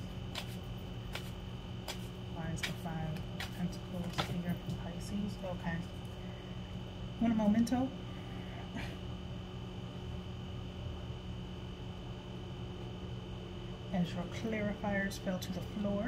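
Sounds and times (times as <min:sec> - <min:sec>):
cards being shuffled: 0:00.3 - 0:04.4.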